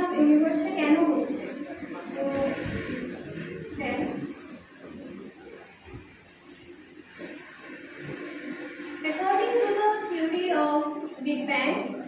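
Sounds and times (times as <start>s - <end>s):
woman talking: 0.0s - 2.9s, 3.7s - 4.3s, 9.0s - 12.0s.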